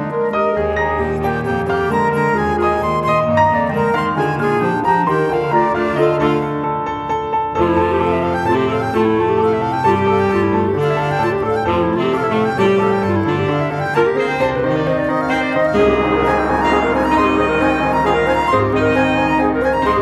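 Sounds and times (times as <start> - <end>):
chamber ensemble playing: 7.6 - 20.0.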